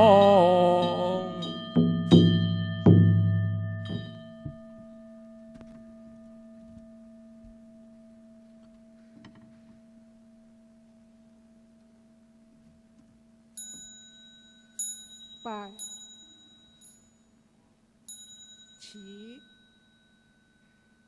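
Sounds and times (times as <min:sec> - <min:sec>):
small high-pitched bell: 0:00.0 - 0:12.6, 0:13.2 - 0:21.0
large bowl bell ringing: 0:00.0 - 0:21.0.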